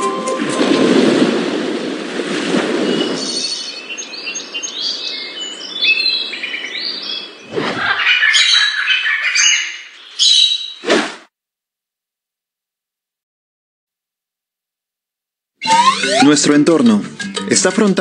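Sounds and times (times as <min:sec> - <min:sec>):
birds chirping and whistling: 0:02.8 - 0:10.8, 0:15.6 - 0:16.5.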